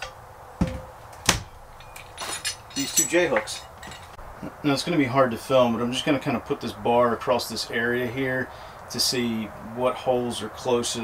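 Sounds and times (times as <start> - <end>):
metal hooks clanking: 0.0 - 4.2.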